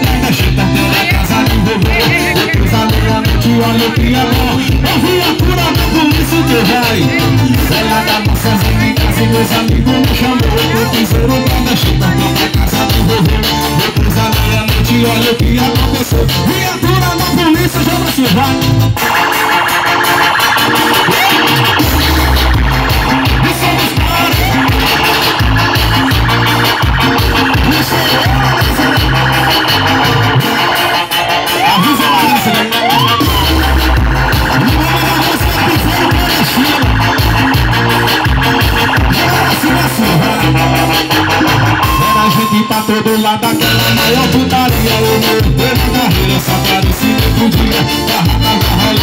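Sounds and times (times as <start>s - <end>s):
heavy pulsing bass: 0.0s - 49.0s
live band through pa system: 0.0s - 49.0s.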